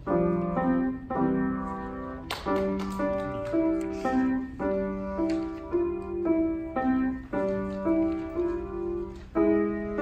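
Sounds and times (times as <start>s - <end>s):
grand piano played slowly: 0.0s - 10.0s.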